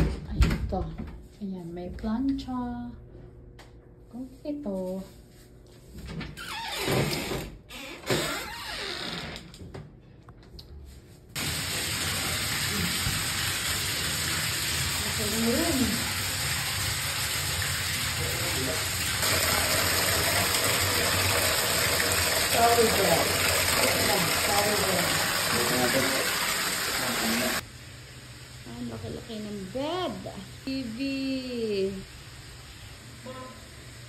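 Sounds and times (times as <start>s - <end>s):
water gushing into bathtub: 11.4s - 27.6s.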